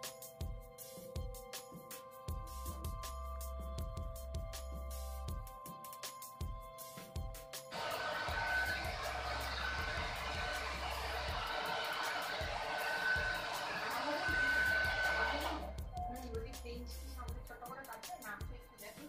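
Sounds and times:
hair dryer blowing: 0:07.7 - 0:15.8.

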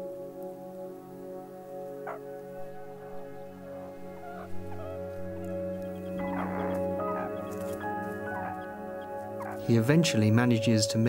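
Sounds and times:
music of long held notes: 0:00.0 - 0:11.0
meerkat calls: 0:04.2 - 0:09.7.

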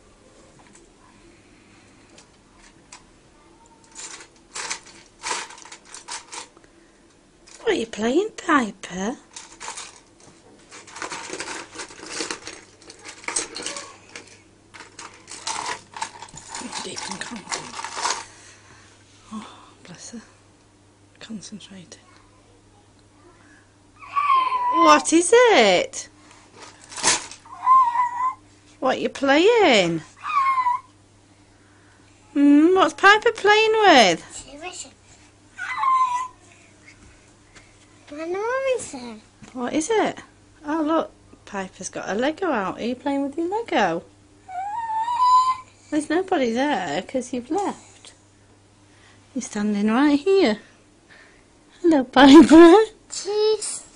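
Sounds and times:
toy bricks rattling in box: 0:03.9 - 0:06.5, 0:10.7 - 0:18.3
toddler high-pitched vocal sound: 0:23.2 - 0:25.1, 0:27.4 - 0:28.4, 0:30.2 - 0:30.9, 0:35.6 - 0:36.6, 0:44.5 - 0:45.8, 0:53.1 - 0:53.9.

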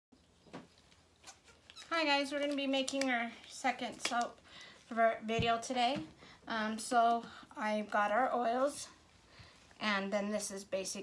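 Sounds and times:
woman speaking: 0:01.9 - 0:09.0, 0:09.8 - 0:11.0.

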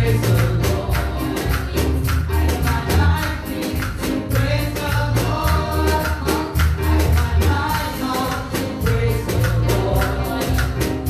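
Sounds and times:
keyboard and band accompaniment: 0:00.0 - 0:11.0
worship team singing: 0:00.0 - 0:11.0.

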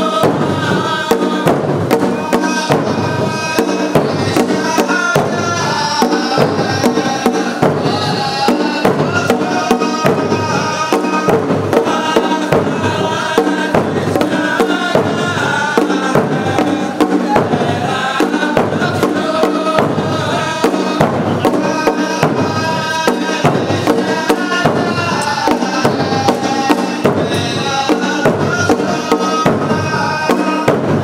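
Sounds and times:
frame drums beating: 0:00.0 - 0:31.0
men chanting in unison: 0:00.0 - 0:31.0.

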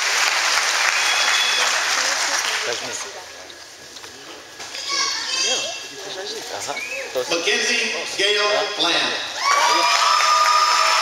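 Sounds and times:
low crowd noise: 0:00.0 - 0:11.0.

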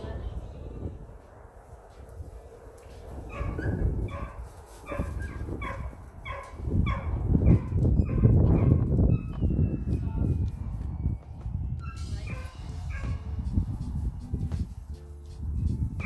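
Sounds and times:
rustling in wood chips: 0:01.9 - 0:06.5
puppy yipping: 0:03.3 - 0:09.4, 0:11.8 - 0:13.2.

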